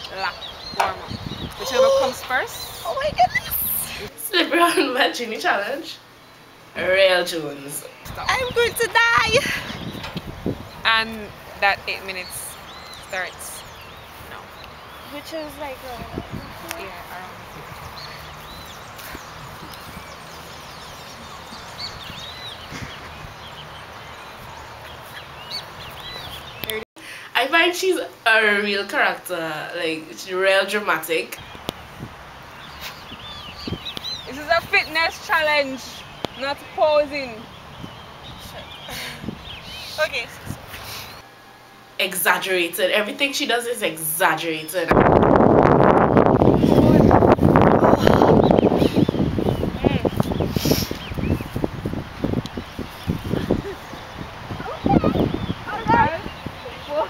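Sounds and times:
wind buffeting microphone: 0.0s - 4.2s, 8.0s - 26.8s, 31.4s - 40.9s, 44.8s - 57.0s
small birds chirping: 0.0s - 26.8s, 29.8s - 57.0s
outdoor noise haze: 0.0s - 57.0s.

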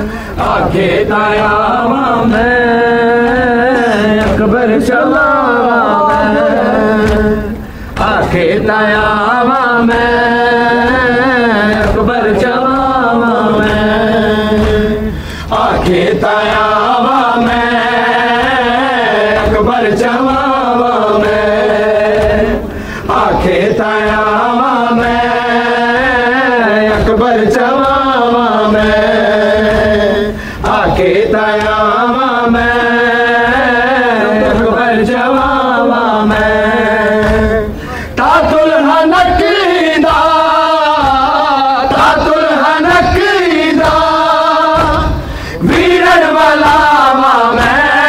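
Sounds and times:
men chanting a lament: 0.0s - 48.0s.

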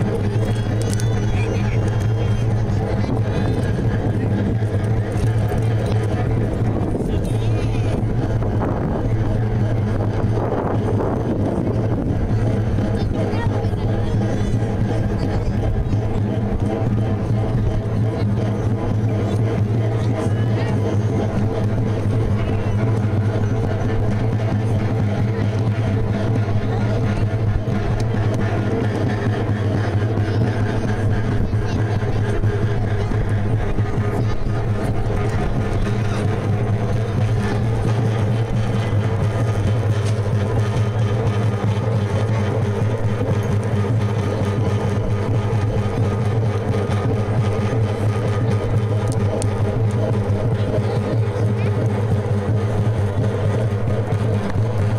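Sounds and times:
crowd voices: 0.0s - 54.9s
fast rattling and clatter: 0.0s - 54.9s
low drone: 0.0s - 54.9s.

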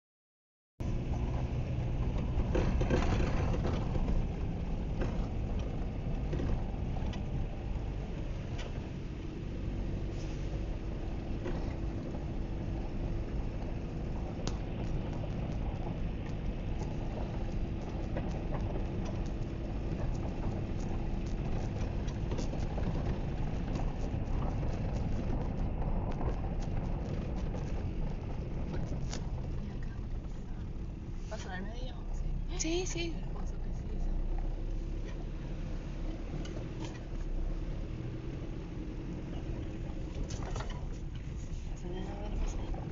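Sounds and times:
knocks and rattles over bumps: 0.8s - 32.4s, 33.3s - 42.9s
car rumbling on dirt road: 0.8s - 42.9s.

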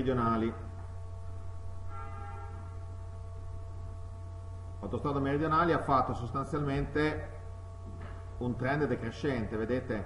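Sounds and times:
low electrical hum: 0.0s - 10.0s
faint ringing of high tones: 1.8s - 3.4s.

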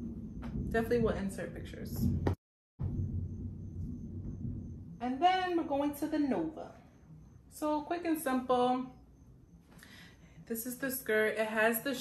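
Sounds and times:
low room rumble: 0.0s - 11.9s.

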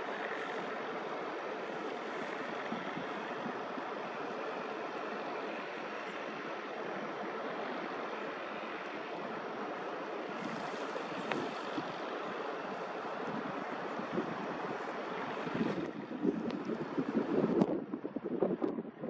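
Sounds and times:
distant surf: 0.0s - 18.0s
wind: 0.0s - 19.0s
faint click: 11.2s - 11.6s.

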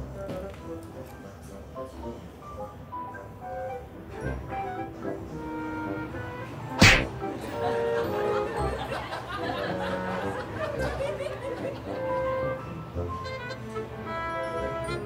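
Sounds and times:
light background music: 0.0s - 15.0s
loud sharp whack: 6.8s - 7.2s.

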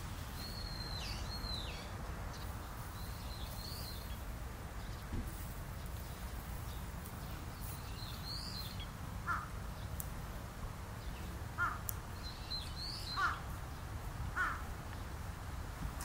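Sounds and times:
low background noise: 0.0s - 16.0s
harsh caw-like bird calls: 9.2s - 9.5s, 11.6s - 11.9s, 12.9s - 13.5s, 14.3s - 14.7s
bird calls: 11.0s - 13.5s.

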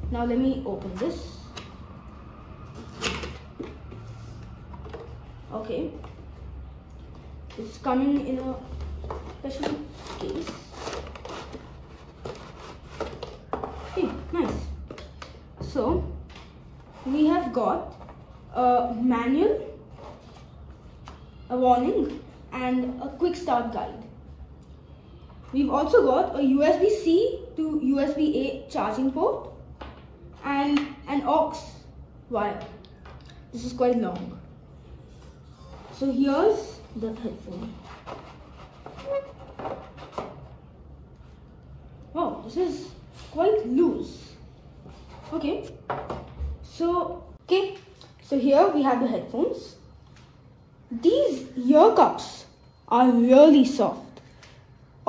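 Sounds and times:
cardboard rubbing and scraping: 8.3s - 14.6s, 37.2s - 40.5s
headphones scraping and knocking: 37.5s - 40.5s.

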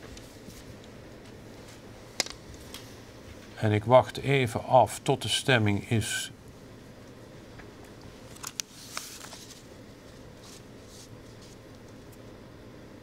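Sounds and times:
papers rustling: 8.3s - 9.7s.

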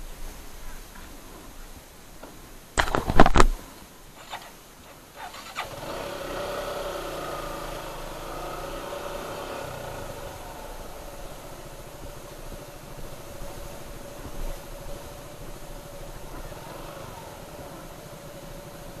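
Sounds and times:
motorcycle engine running: 4.2s - 19.0s.

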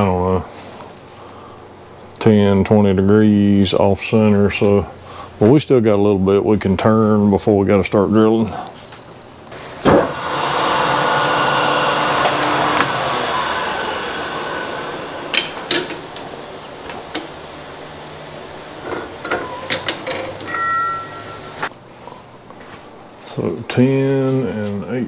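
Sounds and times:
metal lathe running: 9.6s - 21.7s
metallic clicks and knocks: 18.8s - 20.6s.

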